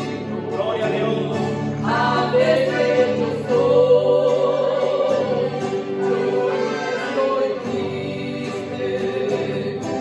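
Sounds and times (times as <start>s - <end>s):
accordion: 0.0s - 10.0s
acoustic guitar: 0.0s - 10.0s
women singing together: 1.7s - 10.0s.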